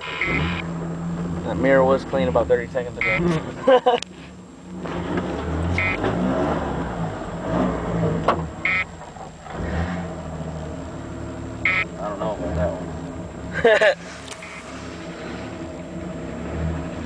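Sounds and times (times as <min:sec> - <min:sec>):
truck engine revving: 0:00.0 - 0:17.0.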